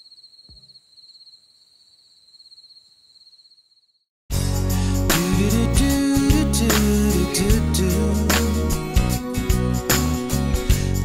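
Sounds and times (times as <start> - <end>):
cricket trilling: 0.0 - 4.1.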